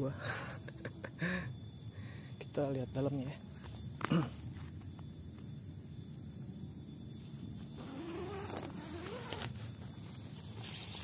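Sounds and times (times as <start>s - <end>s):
flying insect buzzing: 7.2s - 11.0s.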